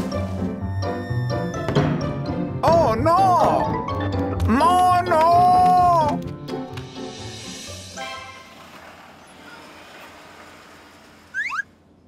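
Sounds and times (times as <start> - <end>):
rising whistle-like chirps: 11.3 - 11.7.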